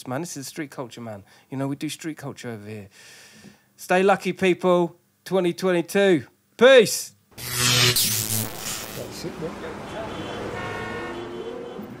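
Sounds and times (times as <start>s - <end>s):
horn-like held tones: 7.4s - 12.0s.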